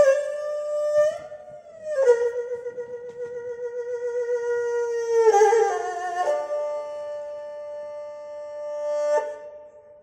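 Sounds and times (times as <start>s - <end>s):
erhu melody over loudspeakers: 0.0s - 10.0s.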